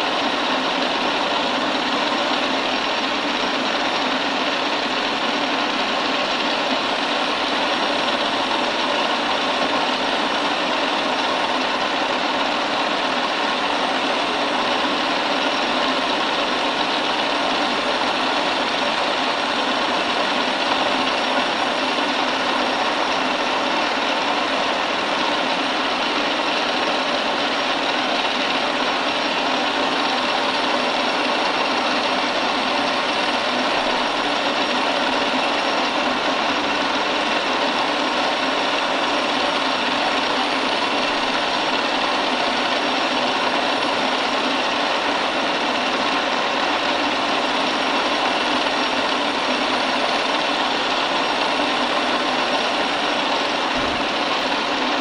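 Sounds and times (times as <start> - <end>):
milling machine whirring: 0.0 - 55.0.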